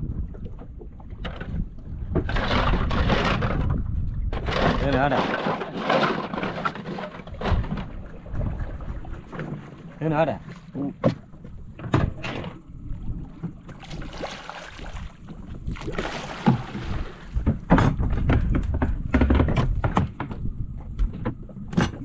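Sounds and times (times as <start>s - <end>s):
wind rumbling on microphone: 0.0s - 22.0s.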